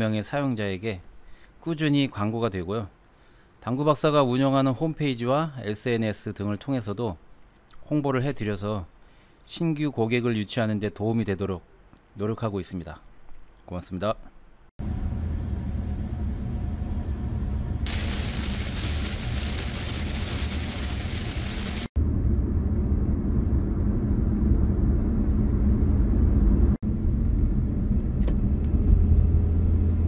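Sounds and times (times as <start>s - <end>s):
car engine and road rumble: 14.8s - 30.0s
tyre and road noise hiss: 17.9s - 21.9s.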